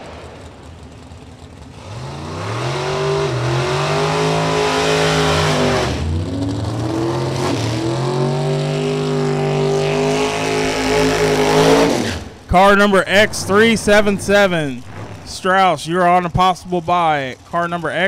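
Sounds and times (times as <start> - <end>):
race car engine at full throttle: 0.0 - 18.0.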